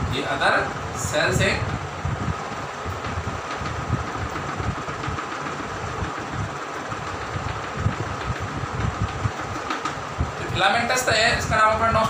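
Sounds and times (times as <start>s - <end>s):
steady background hum: 0.0s - 12.0s.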